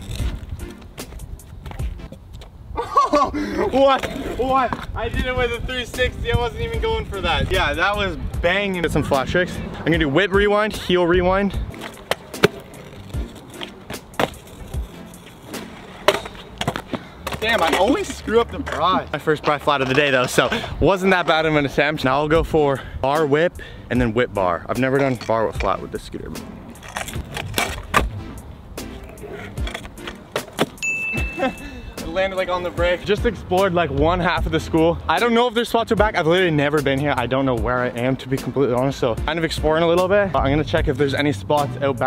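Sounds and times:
scooter wheels rolling on asphalt: 0.0s - 2.7s, 3.5s - 22.4s, 24.0s - 31.0s
scooter wheels landing and rolling: 11.6s - 19.0s, 26.7s - 28.2s, 29.1s - 30.8s
scooter deck clacking: 11.6s - 20.5s
high steady tone: 30.8s - 32.2s.

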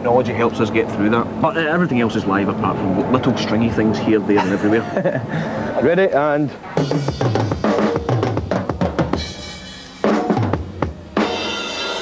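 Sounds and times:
drum fills on toms: 6.8s - 12.0s.

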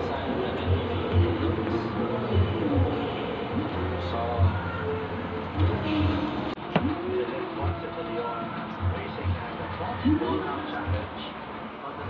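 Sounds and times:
noisy hum: 0.0s - 6.6s
indistinct background voices: 0.0s - 12.0s
music: 0.0s - 12.0s.

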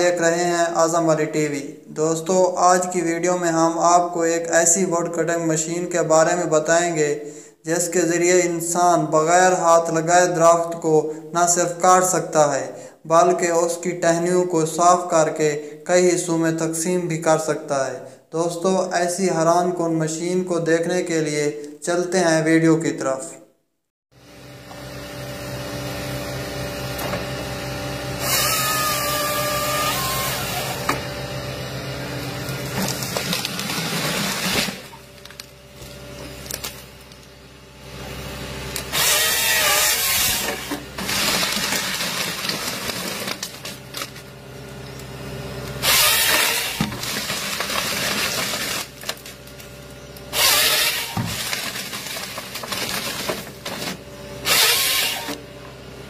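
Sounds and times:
diesel engine and hydraulics droning: 24.2s - 56.0s
harvester head sawing: 26.8s - 35.2s, 38.8s - 44.3s, 45.8s - 55.4s.

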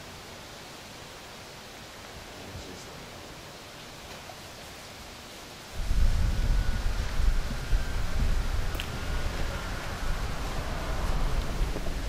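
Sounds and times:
faint steady hiss: 0.0s - 12.0s
wind buffeting microphone: 5.7s - 12.0s.

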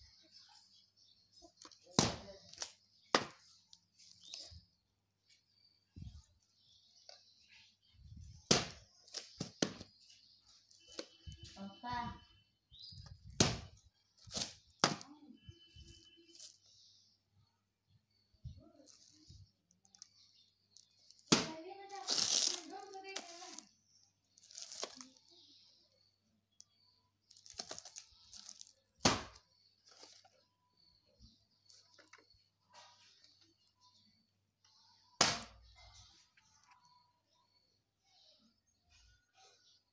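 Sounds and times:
plastic shrink-wrap crinkling: 20.8s - 23.7s, 24.3s - 25.2s, 27.2s - 29.0s.

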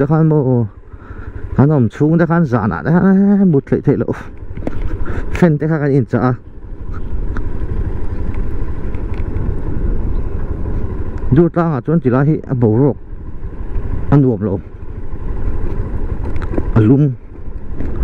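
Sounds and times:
motorcycle engine running: 0.0s - 18.0s
person speaking: 1.4s - 7.2s
wind rumble on microphone: 6.1s - 18.0s.

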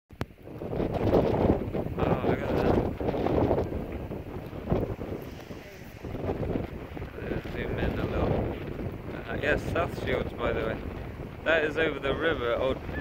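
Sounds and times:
wind buffeting microphone: 0.1s - 13.0s.

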